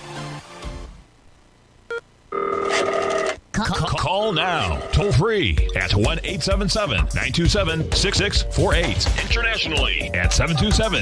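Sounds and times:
electronic phone ringtone: 0:02.3 - 0:03.3, 0:04.5 - 0:05.2.

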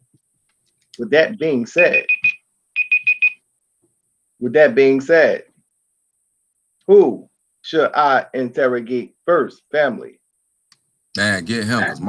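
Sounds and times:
phone ringtone beeps: 0:01.9 - 0:03.4.

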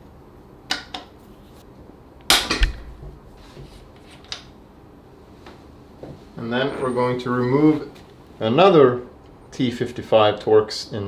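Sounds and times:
crack with low thump: 0:02.4 - 0:03.2.

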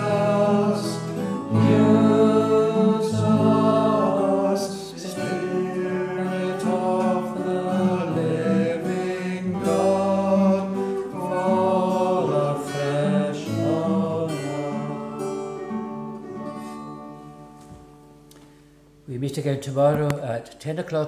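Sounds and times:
hymn singing: 0:00.0 - 0:17.4
plucked string accompaniment: 0:00.0 - 0:18.6.

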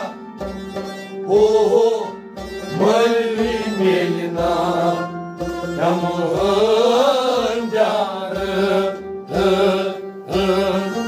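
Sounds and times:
bowed fiddle: 0:00.0 - 0:11.0
man singing: 0:01.2 - 0:11.0.

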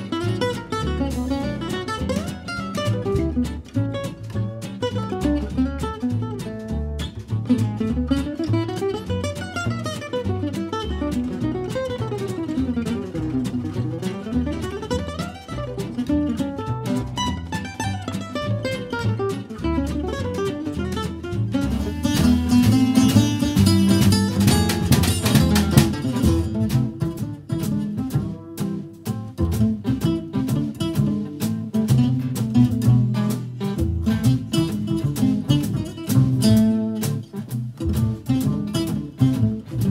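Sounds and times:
acoustic guitar playing: 0:00.0 - 0:39.9.

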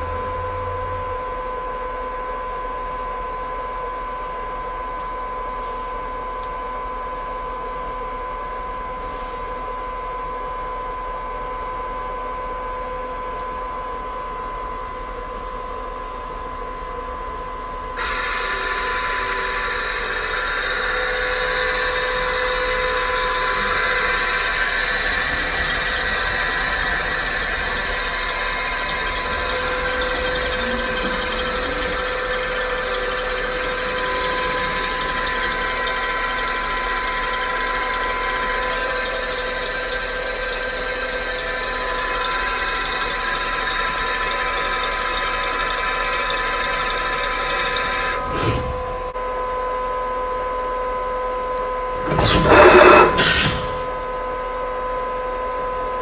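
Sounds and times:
loud mechanical noise: 0:00.0 - 0:11.4, 0:14.9 - 0:50.8, 0:51.6 - 0:56.0
machine spindle whine: 0:00.0 - 0:56.0.

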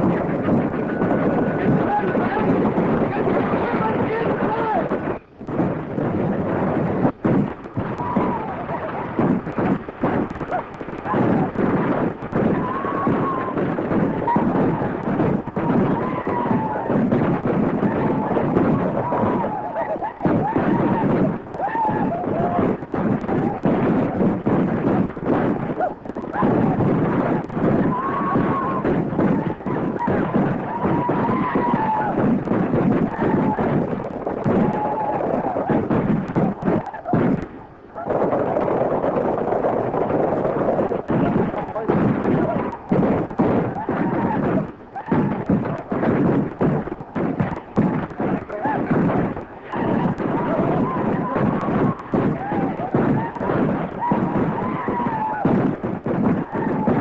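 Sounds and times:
rumbling din: 0:00.0 - 0:57.0
people yelling: 0:00.7 - 0:05.0, 0:07.8 - 0:09.2, 0:10.4 - 0:23.7, 0:25.8 - 0:37.2, 0:47.4 - 0:49.0, 0:49.7 - 0:55.6, 0:56.4 - 0:57.0.

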